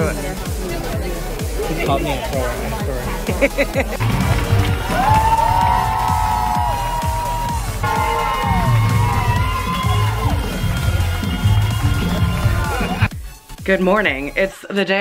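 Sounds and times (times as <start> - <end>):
stage musical music: 0.0 - 14.1
audience cheering and whooping: 4.0 - 13.1.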